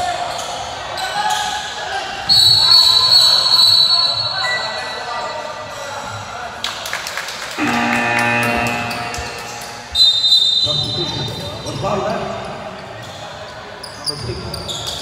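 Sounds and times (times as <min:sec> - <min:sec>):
referee whistle blast: 0:02.3 - 0:04.7, 0:09.9 - 0:11.4.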